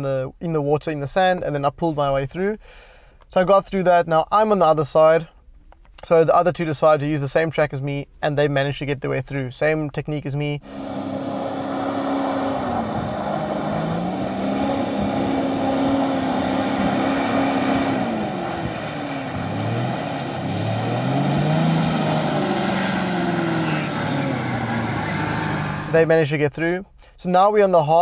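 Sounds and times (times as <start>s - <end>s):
engine revving hard: 10.6s - 26.0s
vehicle pushing through mud and water: 10.6s - 26.1s.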